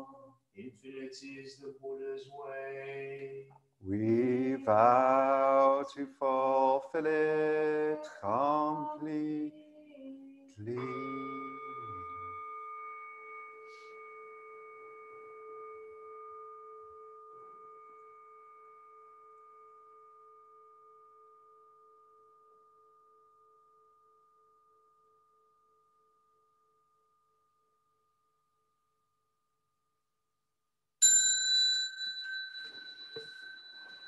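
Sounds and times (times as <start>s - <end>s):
meditation bowl bell ringing: 10.6s - 28.7s, 31.0s - 34.0s.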